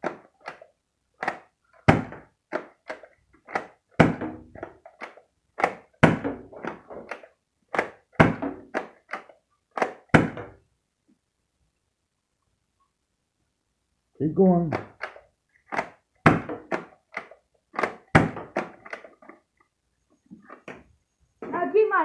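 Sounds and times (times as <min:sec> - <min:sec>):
plastic priming slide clacks: 0:00.0 - 0:01.9, 0:02.5 - 0:03.9, 0:04.5 - 0:06.0, 0:06.6 - 0:10.1, 0:14.7 - 0:16.0, 0:16.6 - 0:19.7
foam dart blaster shot thunk: 0:09.8 - 0:10.5, 0:17.8 - 0:18.4.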